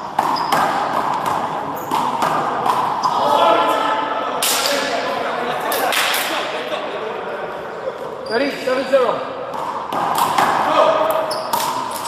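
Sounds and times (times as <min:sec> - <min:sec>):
sharp slaps: 0:04.4 - 0:04.9, 0:05.8 - 0:06.4, 0:09.6 - 0:12.0.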